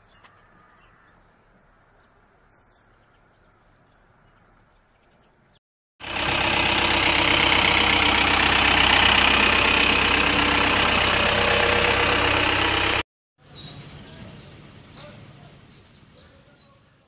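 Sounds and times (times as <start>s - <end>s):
truck engine running: 6.0s - 13.0s.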